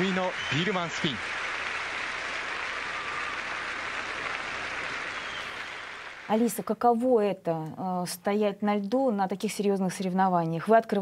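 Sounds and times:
crowd applauding: 0.0 - 6.6.

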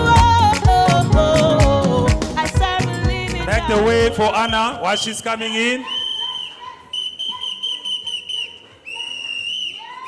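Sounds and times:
whistle blasts: 4.3 - 10.0.

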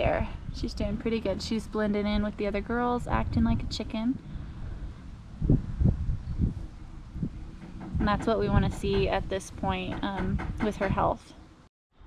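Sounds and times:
low rumble: 0.0 - 10.6.

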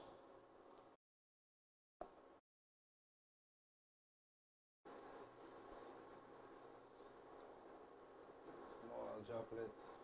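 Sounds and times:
batter frying in oil: 4.9 - 10.0.

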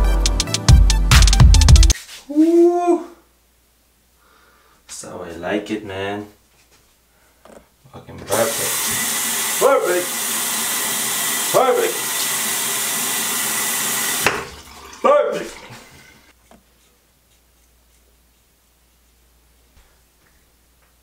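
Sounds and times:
short vocal sounds: 2.3 - 3.3
tap running into sink: 8.7 - 9.2, 13.8 - 14.7.

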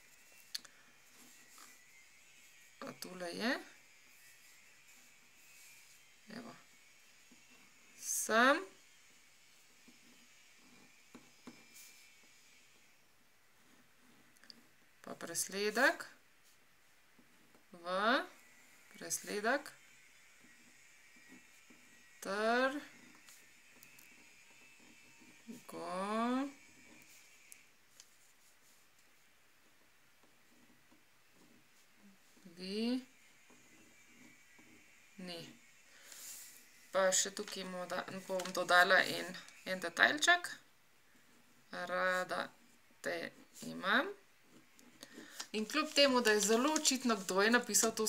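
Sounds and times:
pen scratching on paper: 3.8 - 8.0, 8.8 - 12.7, 13.6 - 14.8, 19.2 - 29.3, 30.2 - 40.2.

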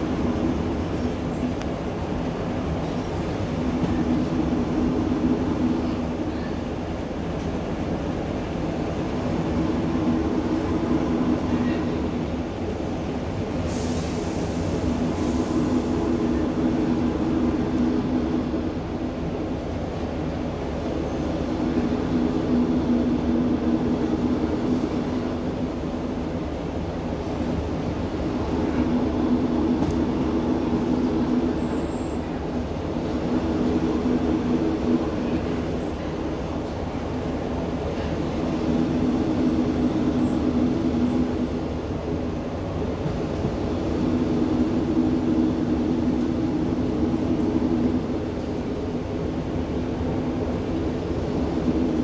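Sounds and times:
droning diesel engine: 0.0 - 52.0
train wheels rumbling on rail: 0.0 - 52.0.

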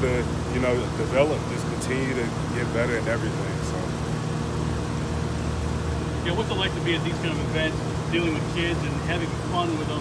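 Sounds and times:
low mechanical hum with tones: 0.0 - 10.0.

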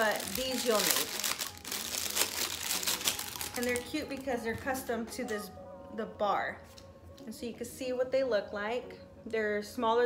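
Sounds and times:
plastic bag crinkling: 0.0 - 4.3.

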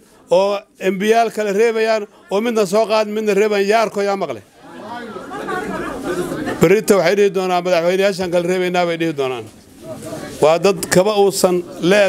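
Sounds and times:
man speaking through microphone: 0.3 - 4.5, 6.6 - 12.0.

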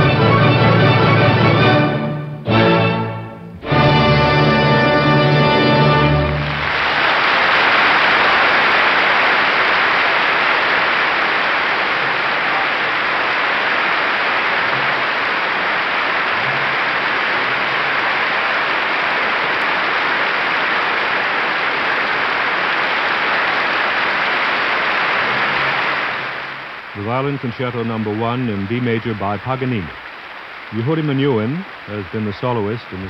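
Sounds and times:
audience applauding: 3.6 - 33.0.

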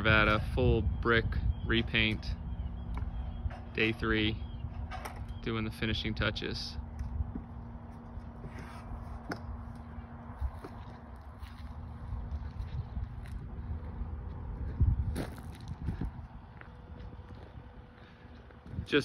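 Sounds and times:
faint steady hum: 0.0 - 19.0
wind rumbling on microphone: 0.0 - 19.0
footsteps on gravel: 6.9 - 19.0.

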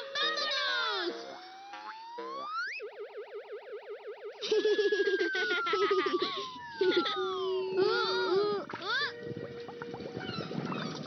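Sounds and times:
springy cartoon boings: 0.0 - 2.9
fast warbling tone: 0.0 - 11.0
jumble with falling glide: 0.0 - 11.0.

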